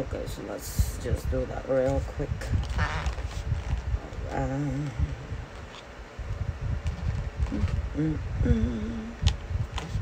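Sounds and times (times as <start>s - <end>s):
wavering high-pitched vocal sound: 7.5s - 9.2s.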